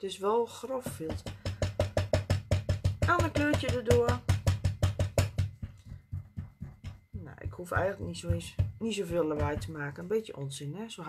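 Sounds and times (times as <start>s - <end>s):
felt pad tapping on paper: 0.8s - 9.9s.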